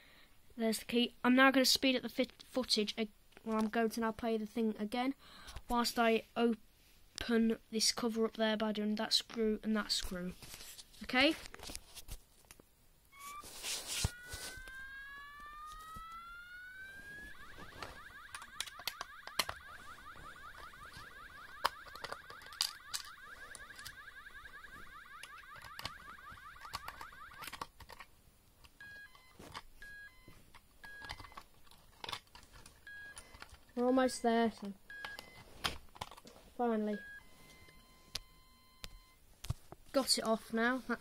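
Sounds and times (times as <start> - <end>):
fire alarm tones: 13.1 - 27.6, 28.8 - 31.4, 32.8 - 35.5, 36.6 - 39.2.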